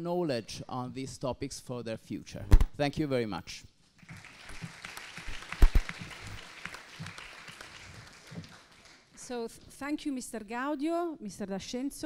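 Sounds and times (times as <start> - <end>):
audience clapping: 4.0 - 9.3.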